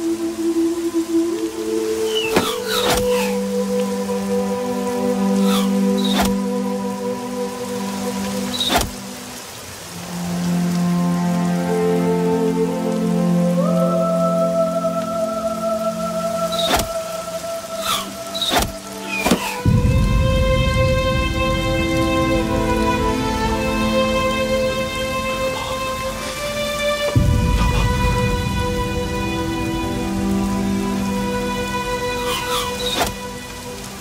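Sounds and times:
dramatic orchestral music: 0.0 - 34.0
heavy rain: 0.0 - 34.0
sharp cracks: 8.6 - 9.0, 16.6 - 17.1, 17.8 - 19.7
deep rumble: 19.6 - 31.8.

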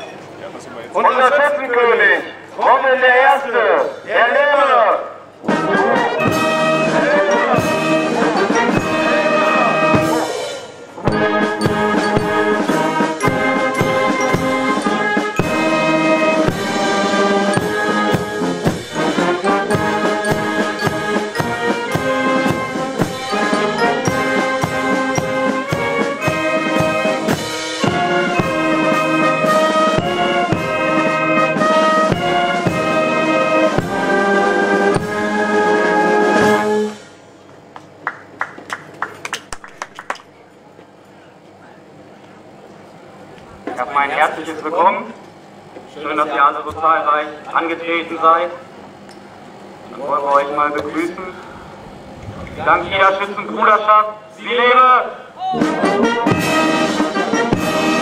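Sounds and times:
brass band playing a march: 4.2 - 37.2, 55.4 - 58.0.

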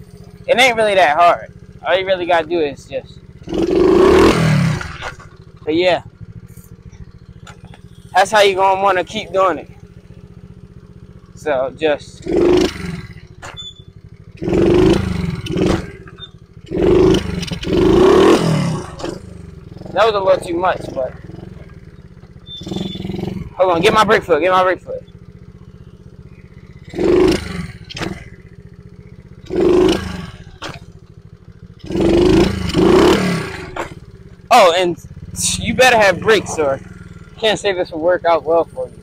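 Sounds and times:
small motorcycle engine revving: 0.0 - 39.0.

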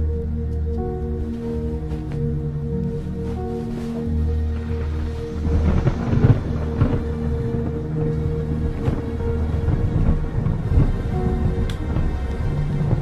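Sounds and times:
dramatic film music: 0.0 - 13.0
heavy low rumble: 0.0 - 13.0.

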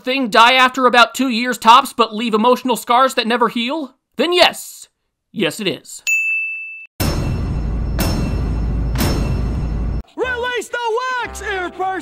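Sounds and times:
bright ding sound effect: 6.1 - 10.0.

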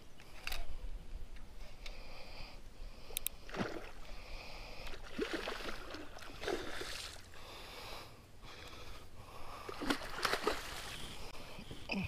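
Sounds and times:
fish thrashing and splashing: 5.0 - 7.2, 9.7 - 11.0.

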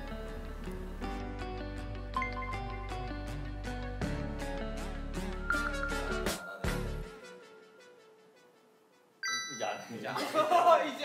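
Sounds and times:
faint background music: 0.0 - 11.0
electronic chime alert: 2.2 - 3.1, 5.5 - 6.9, 9.2 - 10.0.

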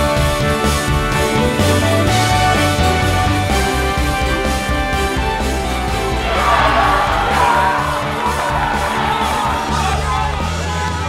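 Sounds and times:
background music: 0.0 - 11.0
boys cheering and yelling: 6.2 - 11.0.

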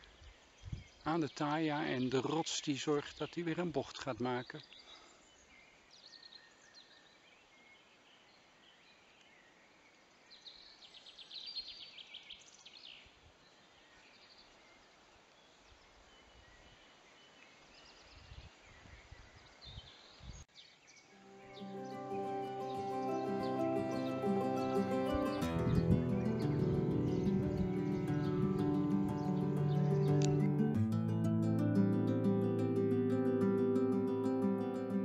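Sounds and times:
songbirds singing: 0.0 - 30.8
background music: 21.2 - 35.0.

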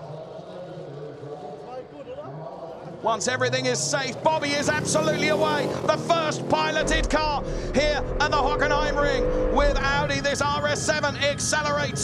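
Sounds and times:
faint indistinct voices: 0.0 - 3.7.

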